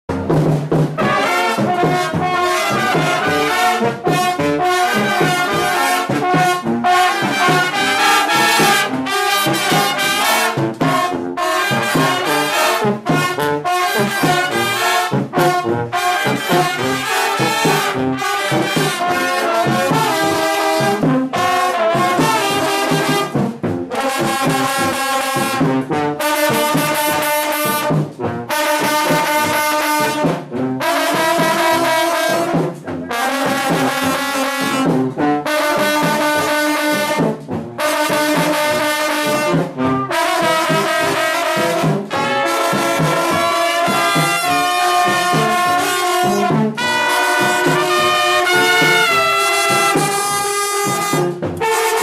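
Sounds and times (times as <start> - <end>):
brass band playing: 0.1 - 52.0.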